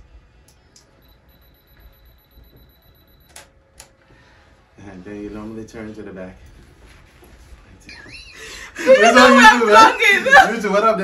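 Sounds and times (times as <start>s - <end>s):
faint high steady whine: 0.0s - 7.9s.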